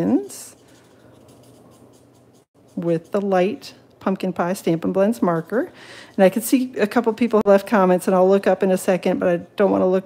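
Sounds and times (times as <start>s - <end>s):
marker rubbing over paper: 0.0s - 3.6s.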